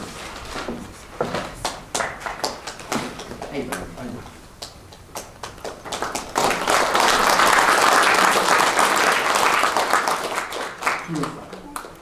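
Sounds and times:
audience applauding: 1.9s - 3.8s, 4.6s - 12.0s.

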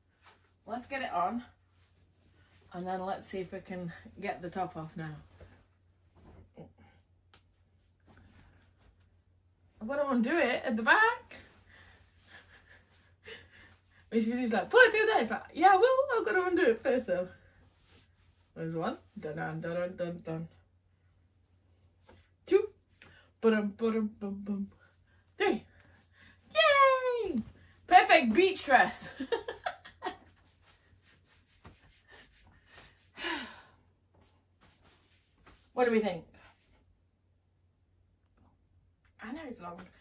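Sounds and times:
fabric rustling: 24.5s - 36.8s.

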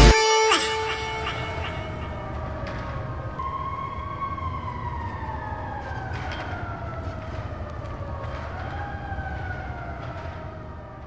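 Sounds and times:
wailing siren-like tone: 0.0s - 11.0s.

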